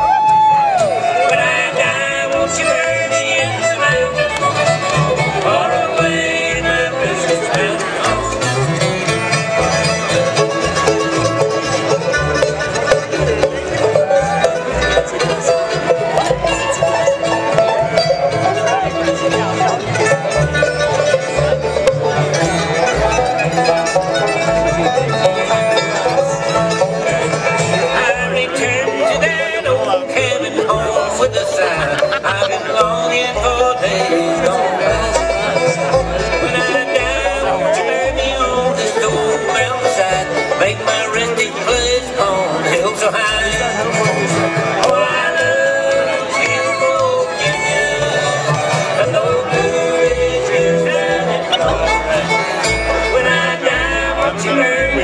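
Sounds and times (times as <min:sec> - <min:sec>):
bluegrass band playing: 0:00.0 - 0:55.0.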